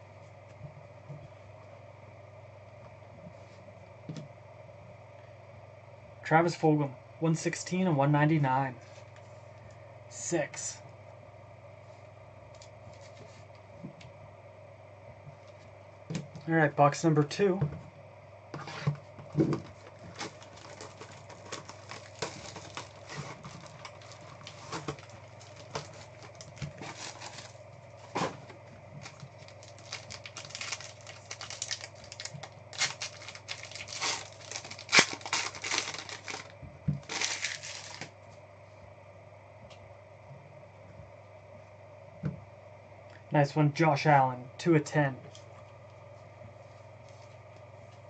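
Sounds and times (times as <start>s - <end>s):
foil wrapper crinkling and ripping: 19.4s - 28.4s, 29.0s - 38.2s.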